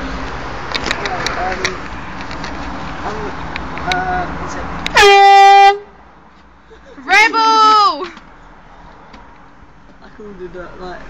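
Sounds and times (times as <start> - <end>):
air horn honk: 4.9 - 6.0.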